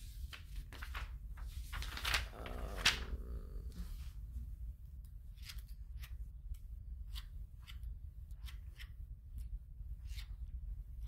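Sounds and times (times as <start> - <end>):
paper rustling: 0.0 - 4.1
low steady hum: 0.0 - 11.0.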